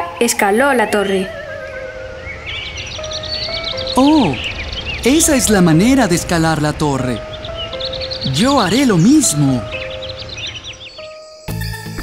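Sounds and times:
high bird chirps: 0:00.0 - 0:11.7
cartoon music score: 0:01.1 - 0:11.6.

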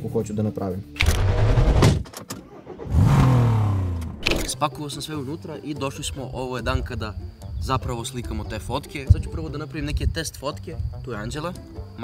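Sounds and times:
car engine starting and revving: 0:01.0 - 0:04.6.

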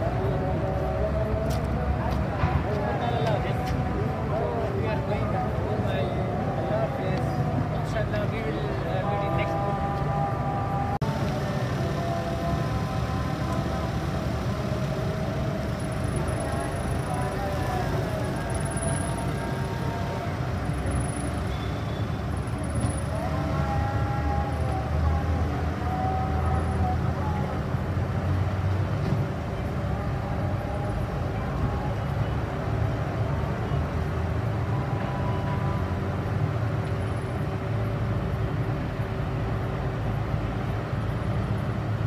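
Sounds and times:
faint voices: 0:00.0 - 0:36.2
car engine low rumble: 0:00.0 - 0:42.0.

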